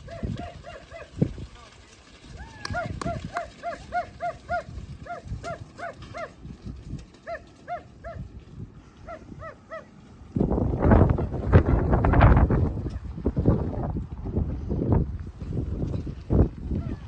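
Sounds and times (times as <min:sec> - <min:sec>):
dog barking in high yaps: 0:00.0 - 0:01.1, 0:02.6 - 0:06.4, 0:07.2 - 0:08.2, 0:09.1 - 0:09.9.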